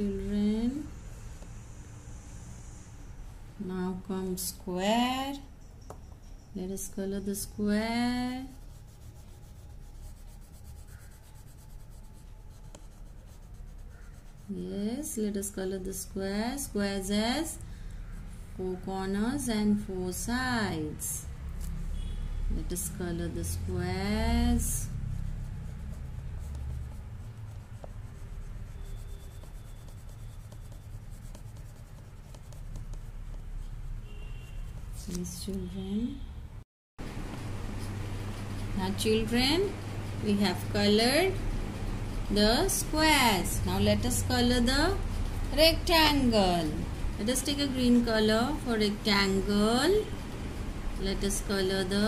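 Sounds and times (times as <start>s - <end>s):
colouring tool scratching on paper: 6.8s - 35.5s, 37.0s - 52.0s.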